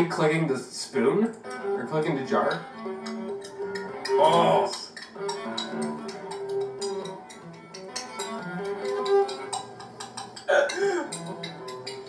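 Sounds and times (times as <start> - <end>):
music with held notes: 0.0 - 12.0
metal spoon tapping a jar: 2.5 - 12.0.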